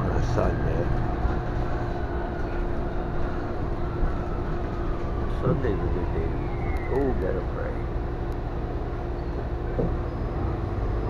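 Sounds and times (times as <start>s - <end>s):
faint falling whine: 0.0s - 10.7s
bus interior rumble and hum: 0.0s - 11.0s.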